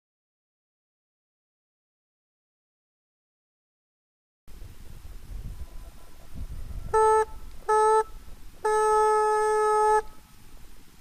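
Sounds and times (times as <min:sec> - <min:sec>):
hunting horn blasts: 0:06.9 - 0:10.4.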